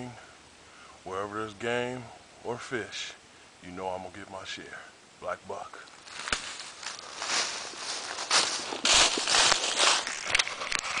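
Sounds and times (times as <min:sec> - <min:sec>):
footsteps crunching dry leaves: 0:05.8 - 0:11.0.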